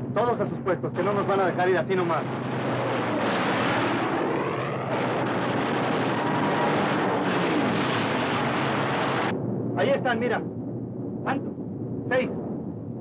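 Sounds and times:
propeller aircraft engines droning: 0.0 - 13.0.

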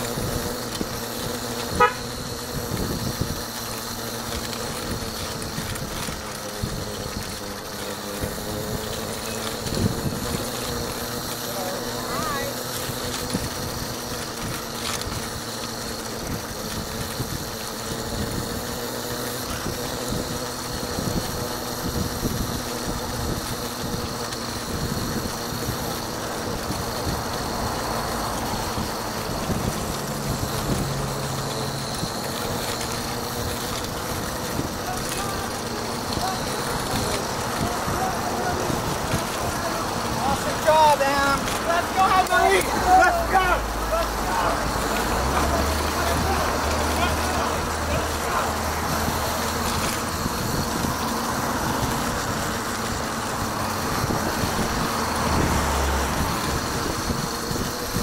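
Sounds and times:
road traffic hum: 0.0 - 58.0
indistinct voices: 25.6 - 58.0.

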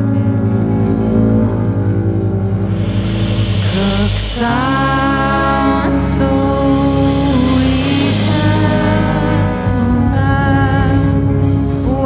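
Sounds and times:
layered sustained music tones: 0.0 - 12.0
low pulsing note: 0.0 - 12.0.

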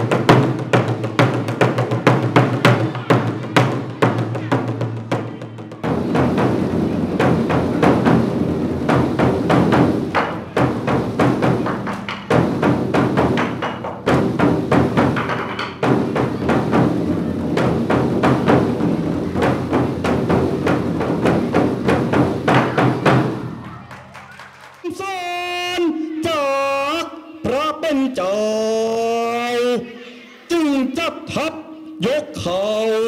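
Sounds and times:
barrel drums beaten rapidly: 0.0 - 23.8.

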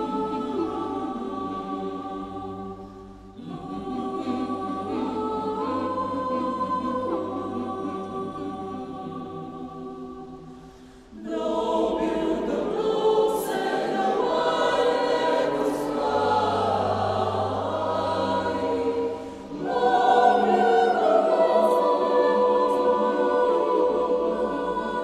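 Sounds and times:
choir singing a cappella: 0.0 - 25.0.

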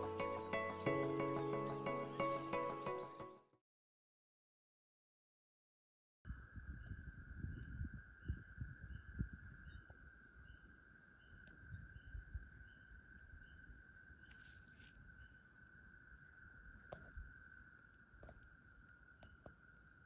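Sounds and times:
wind buffeting microphone: 6.3 - 9.9.

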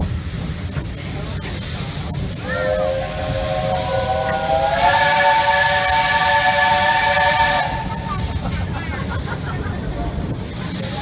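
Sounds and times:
steam hiss: 0.0 - 11.0
steam whistle blast: 2.5 - 8.2.

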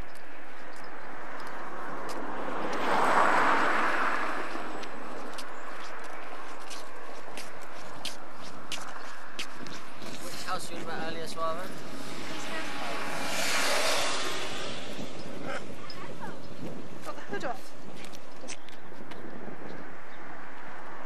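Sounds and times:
faint footsteps on pavement: 0.0 - 21.0
steady outdoor noise: 0.0 - 21.0
vehicle tyre noise passing: 0.0 - 21.0.

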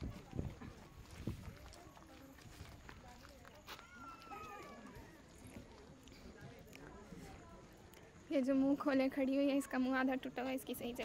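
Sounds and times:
footsteps on asphalt: 0.0 - 7.2
faint chatter of people: 0.0 - 11.0.

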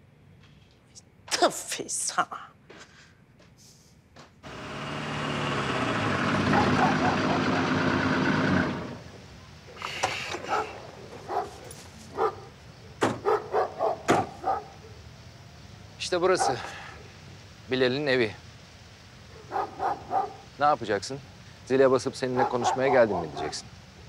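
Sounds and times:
car engine: 4.4 - 10.5
dog barking: 6.5 - 7.6, 10.4 - 15.0, 16.4 - 17.0, 19.3 - 20.5, 22.2 - 23.6.

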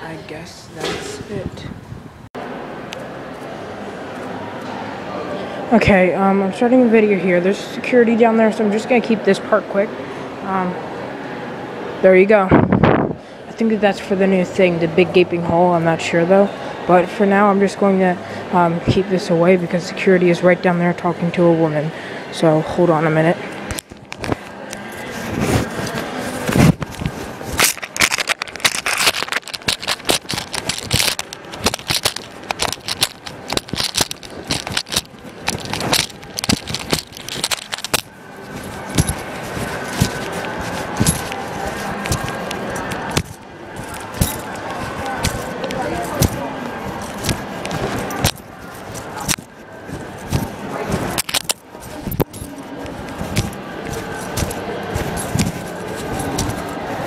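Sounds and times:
keys jingling: 23.7 - 57.0
cloth rubbing on microphone: 24.2 - 57.0.

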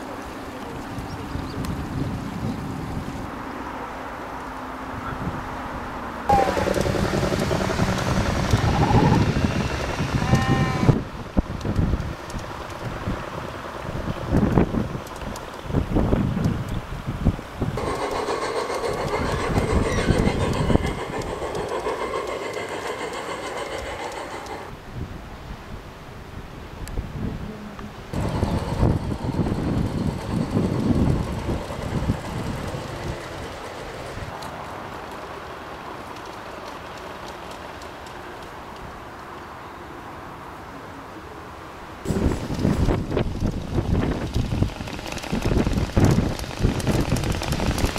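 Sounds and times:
model train wheels clicking on rails: 6.3 - 17.0, 17.6 - 24.8, 28.1 - 35.3, 36.0 - 39.3, 42.0 - 47.9.

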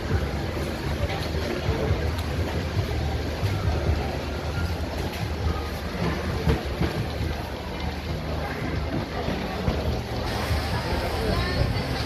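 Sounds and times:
crowded food market rumble: 0.0 - 12.0.

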